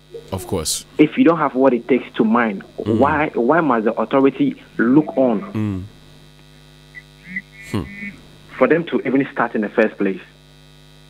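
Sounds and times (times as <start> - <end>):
electrical mains hum: 0.0 - 11.0
person murmuring: 2.8 - 3.3, 5.1 - 5.9, 7.6 - 8.0.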